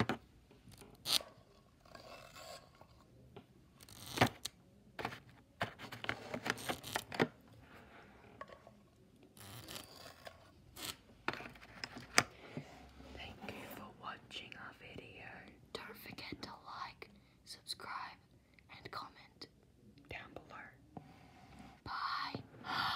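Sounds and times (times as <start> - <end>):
person whispering: 13.0 - 21.0, 21.8 - 22.9.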